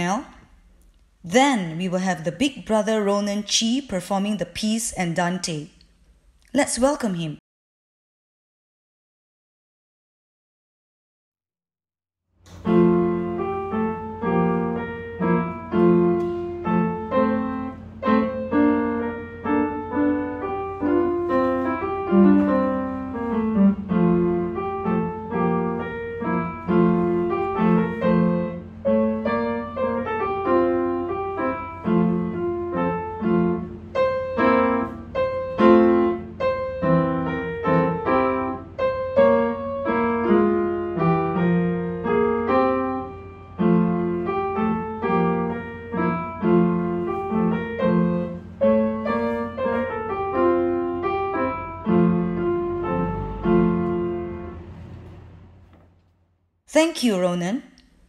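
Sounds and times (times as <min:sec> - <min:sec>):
upright piano playing: 0:12.5 - 0:55.7.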